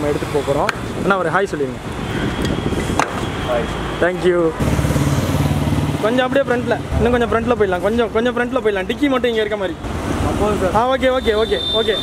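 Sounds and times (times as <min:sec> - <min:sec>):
street traffic noise: 0:00.0 - 0:12.0
voices talking: 0:05.9 - 0:12.0.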